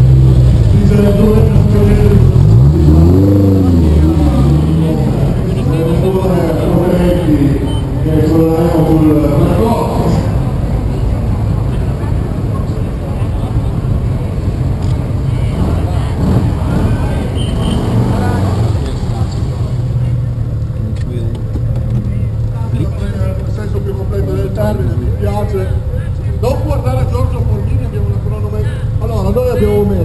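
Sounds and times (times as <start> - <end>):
car engine idling: 0.0 - 30.0
indistinct voices: 0.0 - 30.0.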